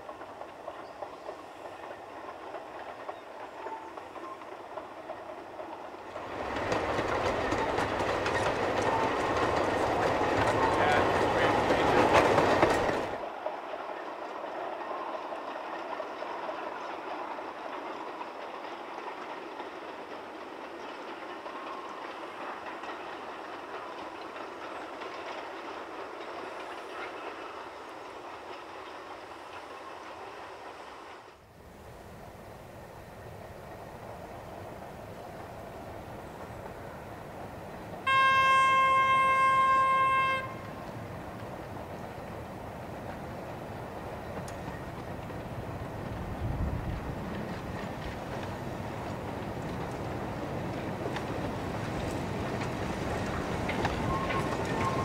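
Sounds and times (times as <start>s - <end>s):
train wagons rumbling over rails: 0.0s - 55.0s.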